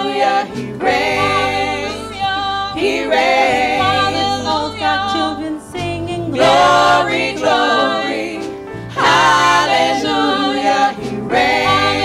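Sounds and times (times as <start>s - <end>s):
women singing gospel in harmony: 0.0s - 12.0s.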